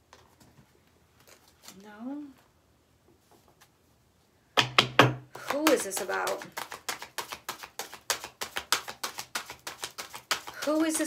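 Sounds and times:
woman speaking: 1.7 - 2.4, 5.4 - 6.5, 10.6 - 11.0
tarot cards clicking and rustling: 4.7 - 11.0.

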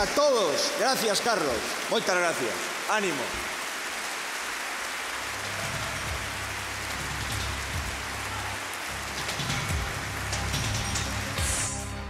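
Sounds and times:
crowd applauding: 0.0 - 11.7
music: 5.3 - 12.0.

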